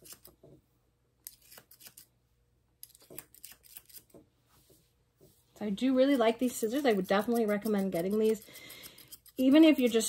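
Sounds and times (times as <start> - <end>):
thinning shears snipping hair: 1.3 - 2.1, 2.8 - 4.1, 6.0 - 10.0.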